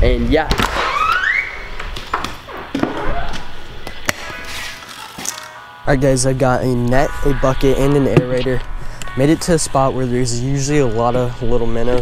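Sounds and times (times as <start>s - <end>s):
music playing: 3.2s - 12.0s.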